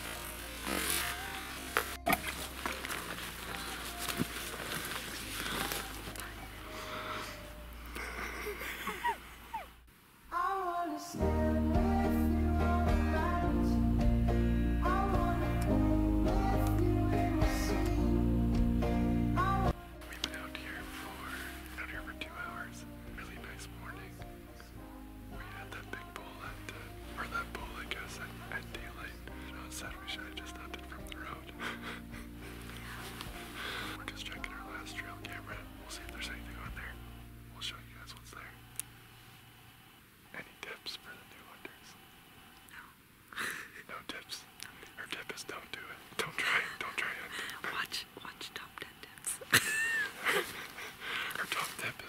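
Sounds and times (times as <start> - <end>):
man whispering: 0.0 - 8.2, 19.8 - 38.8, 40.3 - 42.0, 43.6 - 49.5, 51.3 - 52.0
soft background music: 0.0 - 8.8, 10.4 - 39.3, 45.0 - 49.1.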